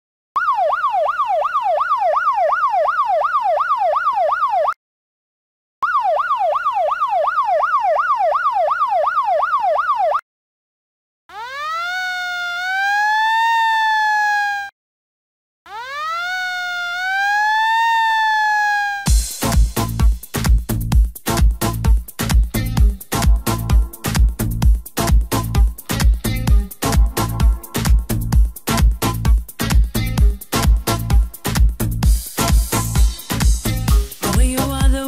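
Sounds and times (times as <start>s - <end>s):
siren yelping and wailing: 0.4s - 4.8s, 5.8s - 10.2s, 11.3s - 14.7s, 15.7s - 19.2s.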